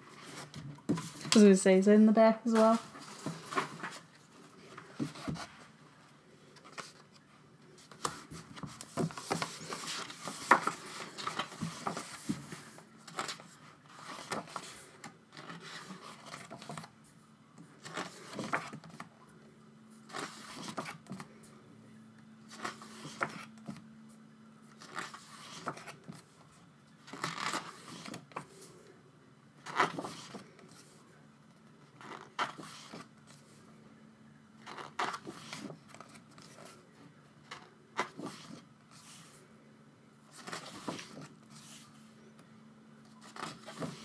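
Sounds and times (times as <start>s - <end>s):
photobook pages turning: 2.6s - 5.7s, 6.5s - 16.9s, 17.8s - 19.1s, 20.0s - 21.4s, 22.5s - 23.8s, 24.7s - 26.4s, 27.0s - 28.7s, 29.6s - 31.0s, 32.0s - 33.5s, 34.6s - 36.8s, 37.5s - 39.4s, 40.3s - 42.0s, 43.2s - 44.0s.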